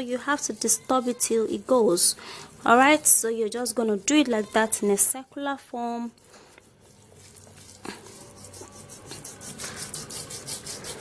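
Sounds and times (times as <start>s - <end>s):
palm scrubbing gritty paste: 0.0s - 11.0s.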